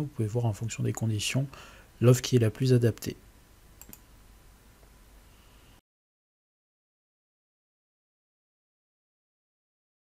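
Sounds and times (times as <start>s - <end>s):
computer mouse clicking: 3.8s - 4.1s.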